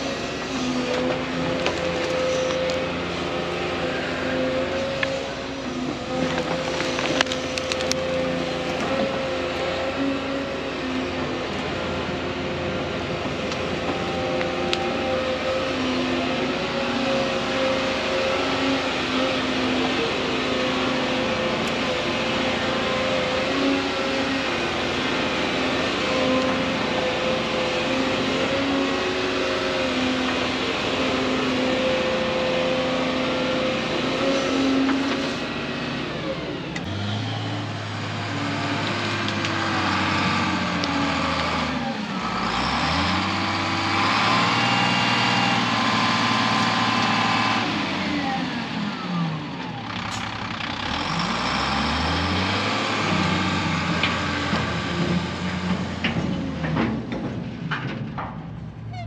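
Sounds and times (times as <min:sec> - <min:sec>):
dump truck engine revving: 0:00.0 - 0:59.0
excavator diesel engine: 0:00.0 - 0:59.0.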